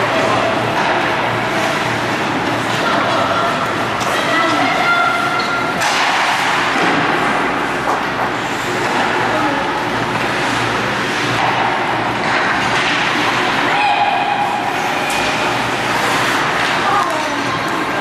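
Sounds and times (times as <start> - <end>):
steady arena noise: 0.0 - 18.0.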